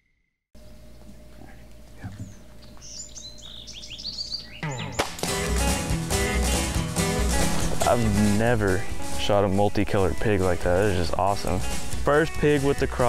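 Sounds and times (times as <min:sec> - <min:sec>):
faint woodland ambience: 0:00.6 - 0:05.1
small birds chirping: 0:00.8 - 0:05.2
music with steady beat: 0:05.0 - 0:13.0.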